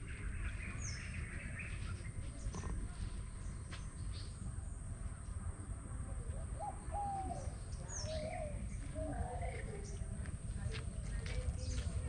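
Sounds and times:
birds calling: 0:06.6 - 0:10.2.

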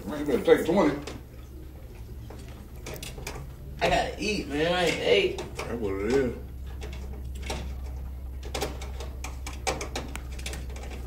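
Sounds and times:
steady low hum: 0:00.0 - 0:11.0
hands clicking on wiring and parts: 0:00.6 - 0:11.0.

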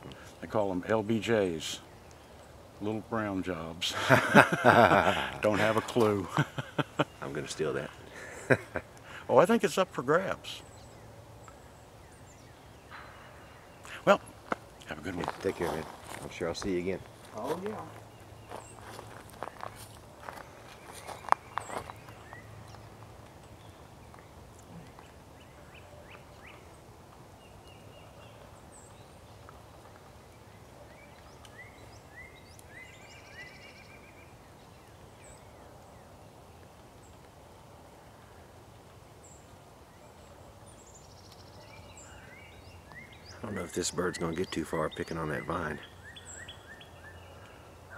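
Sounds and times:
small birds chirping: 0:00.0 - 0:47.9.

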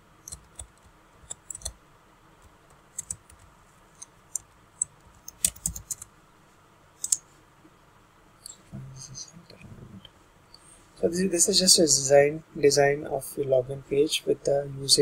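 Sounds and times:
computer keyboard typing: 0:00.2 - 0:01.8, 0:02.7 - 0:06.1, 0:07.0 - 0:07.2.

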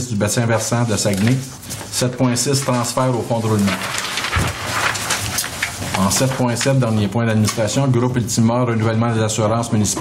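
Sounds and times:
paper rustling: 0:00.5 - 0:06.9.

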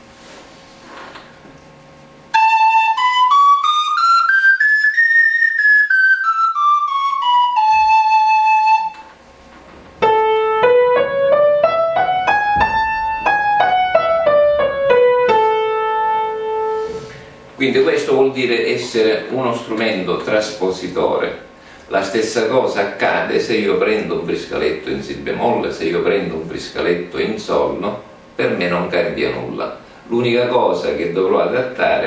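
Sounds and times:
piano playing a scale: 0:02.3 - 0:09.1, 0:10.0 - 0:17.3
cane flute playing a scale: 0:02.3 - 0:09.2, 0:10.0 - 0:17.1.

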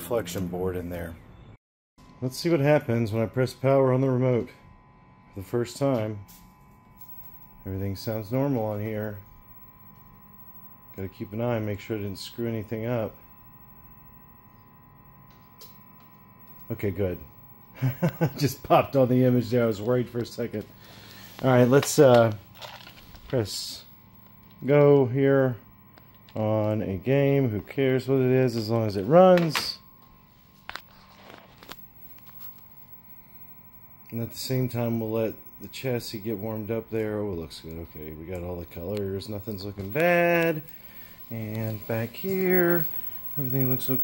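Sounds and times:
faint steady hum: 0:00.0 - 0:44.0
thin high steady tones: 0:05.3 - 0:44.0.

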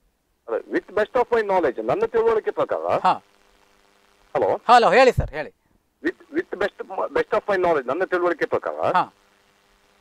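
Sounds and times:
person talking: 0:04.4 - 0:09.1.

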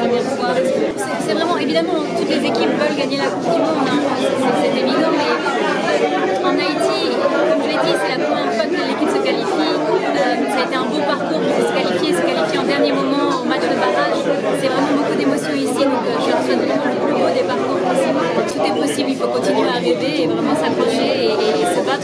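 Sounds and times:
background chatter of voices: 0:00.0 - 0:22.0
woman talking: 0:00.0 - 0:22.0.

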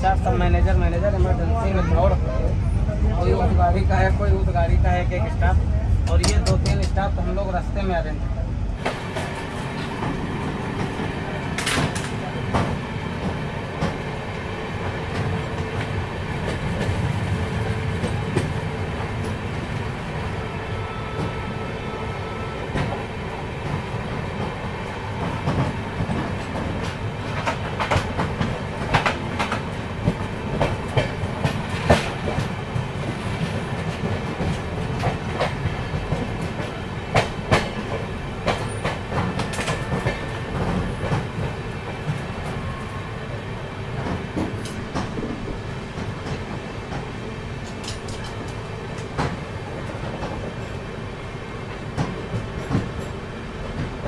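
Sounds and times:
passing train alongside: 0:00.0 - 0:54.0
train wheels rumbling on rail: 0:00.0 - 0:54.0.

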